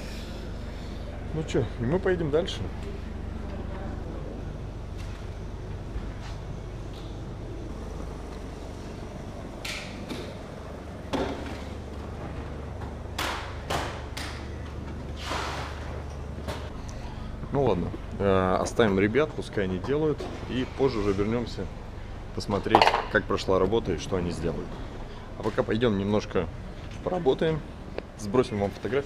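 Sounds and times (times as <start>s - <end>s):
workshop room hum: 0.0s - 29.0s.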